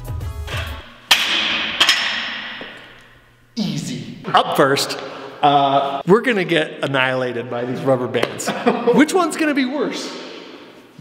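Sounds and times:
background music: 0:00.0 - 0:02.3.

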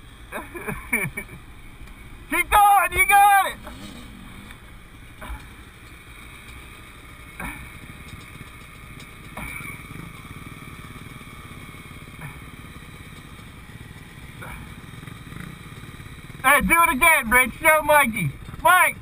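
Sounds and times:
dirt bike engine idling: 0:00.0 - 0:19.0.

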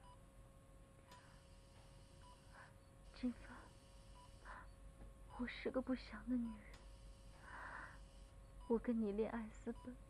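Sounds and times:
faint steady hum: 0:00.0 - 0:10.0
patient monitor beeps: 0:01.1 - 0:05.6, 0:06.3 - 0:10.0.

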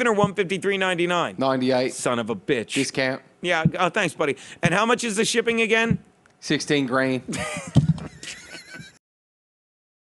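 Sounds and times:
high wavering laughter: 0:07.3 - 0:09.0.

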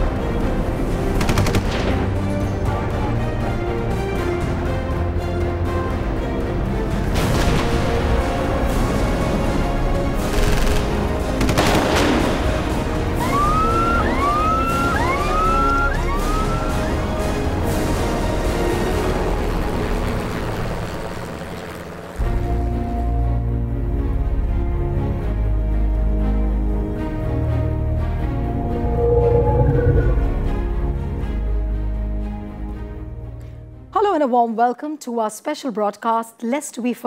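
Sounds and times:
dramatic music: 0:00.0 - 0:33.9
rapid automatic gunfire: 0:10.3 - 0:12.4
helicopter rotor thudding: 0:18.6 - 0:22.3
falling swish: 0:28.5 - 0:30.5.

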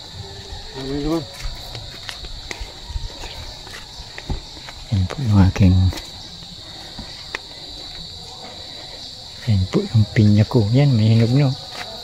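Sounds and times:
footsteps on dirt path: 0:00.0 - 0:12.0
insects droning: 0:00.0 - 0:12.0.

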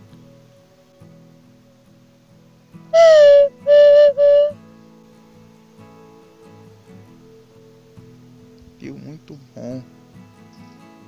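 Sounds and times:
soft guitar music: 0:00.0 - 0:11.0
wooden bird call whistling: 0:03.0 - 0:04.5.

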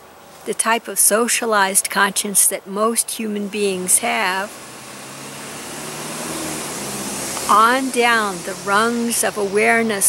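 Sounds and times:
vehicle rushing: 0:02.4 - 0:10.0.

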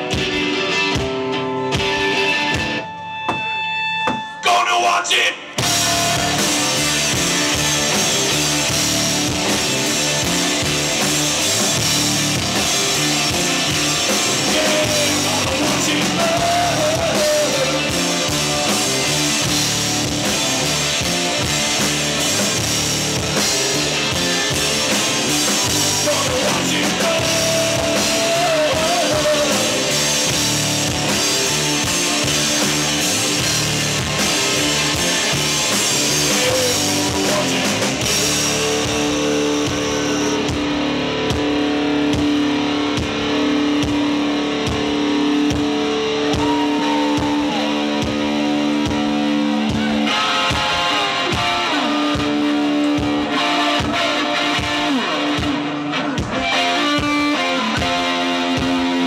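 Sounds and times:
drum kit: 0:00.0 - 0:04.8, 0:05.4 - 0:59.0
bass guitar: 0:00.0 - 0:59.0
electric guitar: 0:00.0 - 0:59.0.

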